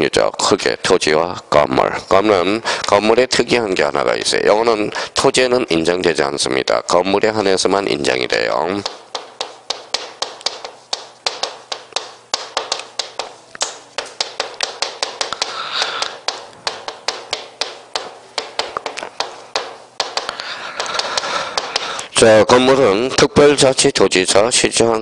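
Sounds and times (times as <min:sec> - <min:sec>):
chalk tapping on chalkboard: 0:08.1 - 0:22.0.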